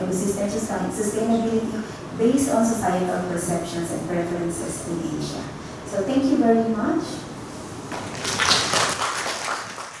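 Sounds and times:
audience clapping: 7.9s - 10.0s.

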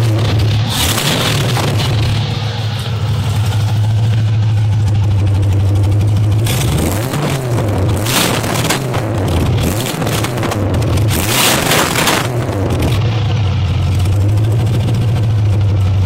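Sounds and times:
car engine idling and revving: 0.0s - 16.0s.

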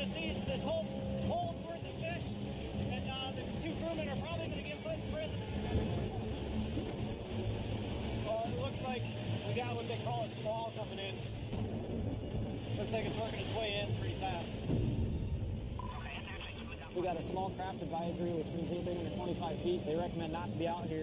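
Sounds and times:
faint voices: 0.0s - 11.5s, 12.2s - 14.7s, 15.8s - 21.0s
boat motor running: 0.0s - 21.0s
rough water: 0.0s - 21.0s.

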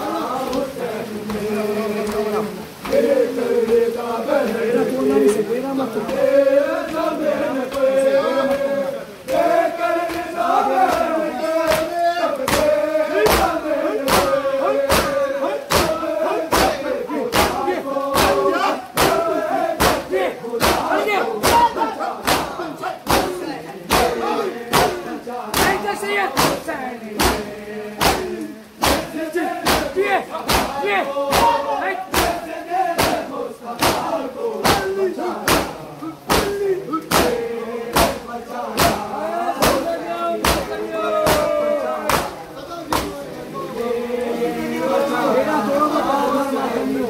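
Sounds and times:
men chanting a lament: 0.0s - 47.0s
men beating chests: 9.3s - 43.2s.

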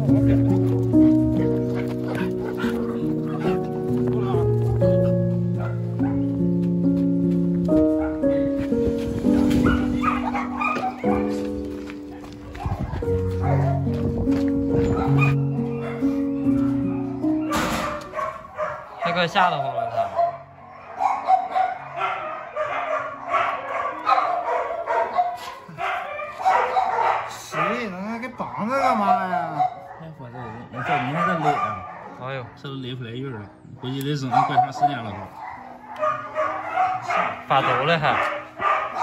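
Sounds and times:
background music with held notes: 0.0s - 25.1s, 25.8s - 39.0s
puppy whining: 14.8s - 18.8s
faint dog sounds: 14.9s - 39.0s.

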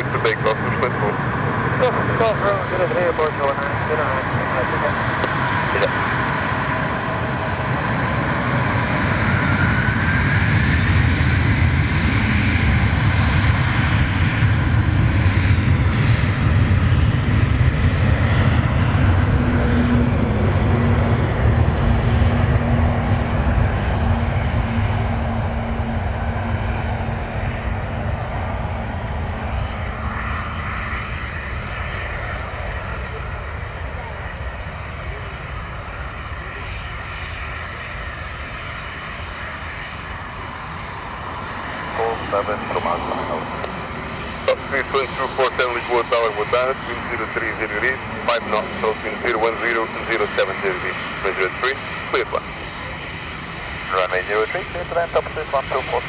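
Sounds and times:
jet engines at takeoff: 0.0s - 56.0s.

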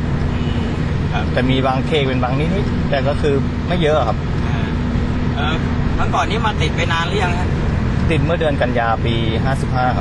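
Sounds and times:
engine drone and road noise: 0.0s - 10.0s.

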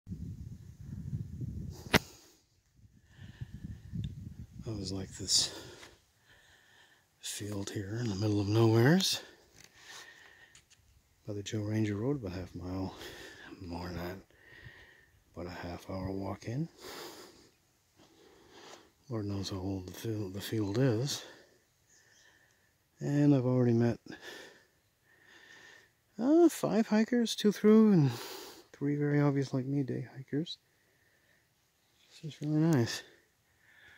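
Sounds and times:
wind buffeting microphone: 0.1s - 2.0s, 2.7s - 5.4s
faint breathy hiss: 0.4s - 11.0s, 12.8s - 15.3s, 16.4s - 23.0s, 27.9s - 28.9s
man's quick breath in: 3.0s - 4.0s, 5.6s - 7.1s, 14.3s - 15.2s
man talking: 4.6s - 5.9s, 7.2s - 9.4s, 11.3s - 14.2s, 15.3s - 17.0s, 19.1s - 21.4s, 23.0s - 24.2s, 26.2s - 30.6s, 32.1s - 33.2s.

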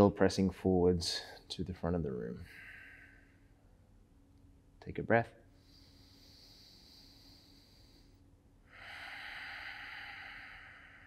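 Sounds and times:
man breathing out: 2.4s - 3.8s, 5.6s - 11.0s.

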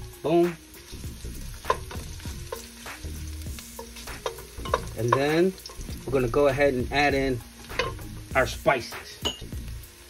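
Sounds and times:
garlic sizzling in hot oil: 0.0s - 10.0s.

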